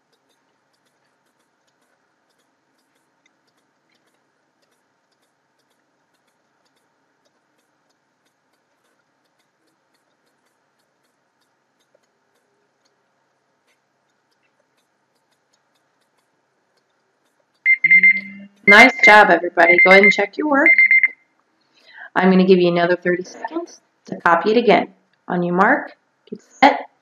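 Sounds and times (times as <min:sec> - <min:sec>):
timer alarm beeping: 0:17.6 - 0:21.2.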